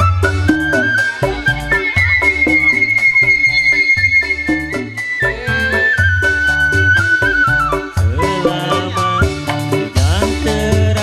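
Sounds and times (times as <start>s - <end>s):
high flute-like melody: 0.0s - 9.8s
drum and bass beat: 0.0s - 11.0s.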